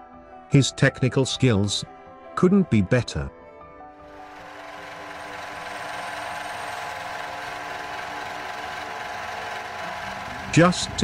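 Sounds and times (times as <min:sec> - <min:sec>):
metal lathe whirring: 0:04.1 - 0:11.0.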